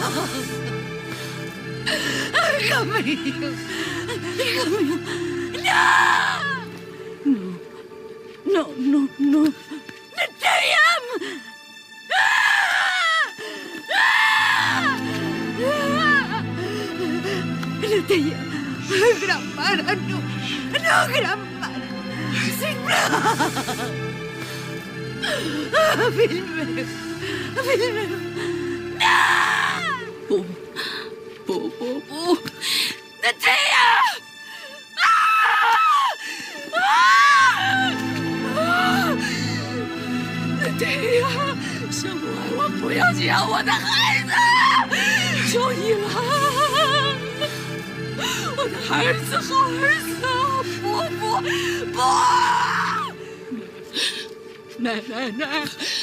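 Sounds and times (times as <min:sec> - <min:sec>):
film score music: 0:00.0 - 0:56.0
woman screaming: 0:05.6 - 0:06.6, 0:12.1 - 0:13.3, 0:13.9 - 0:16.4, 0:29.0 - 0:30.1, 0:33.3 - 0:34.2, 0:35.0 - 0:39.2, 0:43.7 - 0:45.4, 0:51.9 - 0:53.2.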